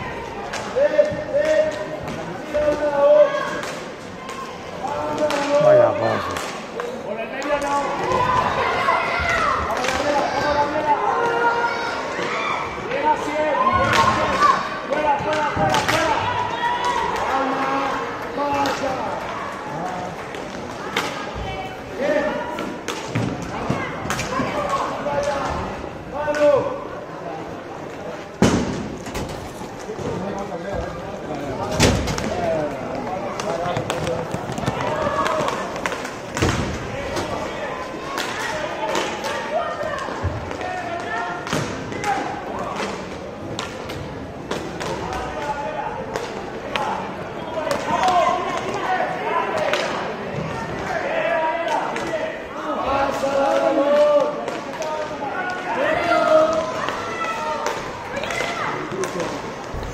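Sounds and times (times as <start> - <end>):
hockey sticks and puck clacking: 0.5 - 5.6, 6.3 - 8.2, 9.2 - 11.4, 18.4 - 21.2, 22.5 - 25.6, 31.7 - 47.0, 47.6 - 50.6, 53.1 - 59.9
spectators and players shouting: 7.6 - 20.2, 46.7 - 59.9.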